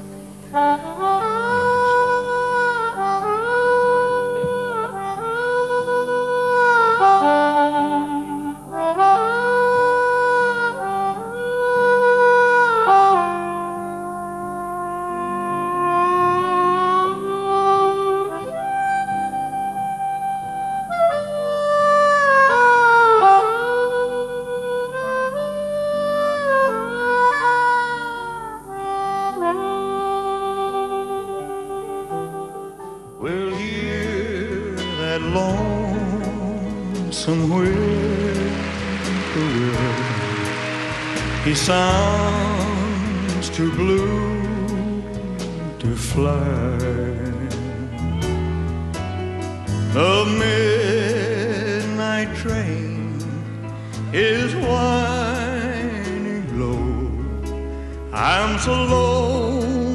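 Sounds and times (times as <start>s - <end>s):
harmonica melody: 0.0s - 59.9s
soft low accompaniment: 0.0s - 59.9s.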